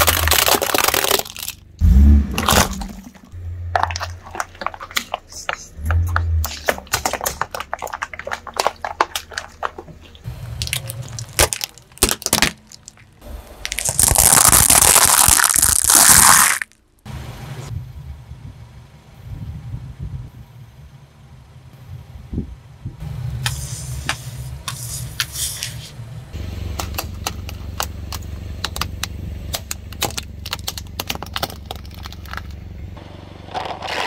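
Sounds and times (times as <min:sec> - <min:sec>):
low steady rumble: 0:00.0 - 0:15.5, 0:16.7 - 0:34.0
tyre crushing balloons and slime: 0:00.0 - 0:16.8, 0:33.4 - 0:34.0
carton bursting: 0:10.6 - 0:16.8.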